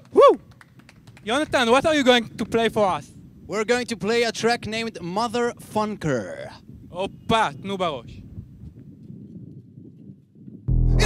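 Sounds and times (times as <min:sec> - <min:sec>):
low outdoor rumble: 0:10.7 - 0:11.0.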